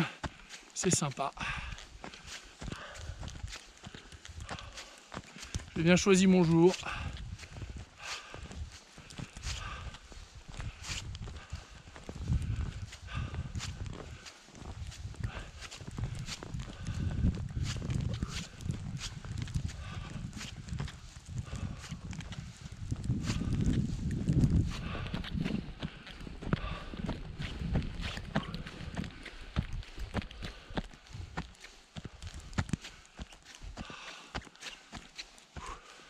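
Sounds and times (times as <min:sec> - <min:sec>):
footsteps crunching in snow: 0:00.0 - 0:36.0.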